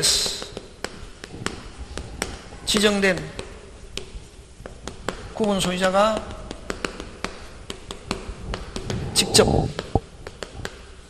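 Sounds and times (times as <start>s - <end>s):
chalk tapping on chalkboard: 0.1s - 10.9s.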